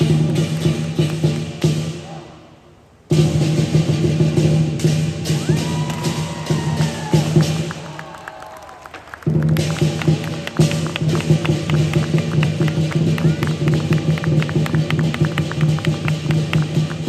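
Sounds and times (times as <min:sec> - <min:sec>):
lion dance drum: 0:00.0 - 0:02.3, 0:03.1 - 0:08.0, 0:09.2 - 0:17.0
cymbals crashing: 0:03.1 - 0:07.9.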